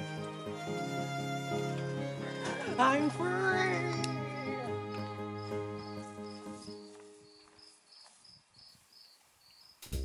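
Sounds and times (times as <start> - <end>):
sustained music: 0.0 - 7.2
piano music: 0.0 - 7.4
crickets chirping: 4.2 - 10.0.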